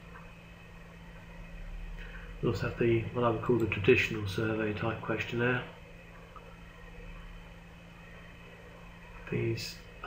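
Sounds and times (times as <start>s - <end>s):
low hum with light hiss: 0.0s - 10.0s.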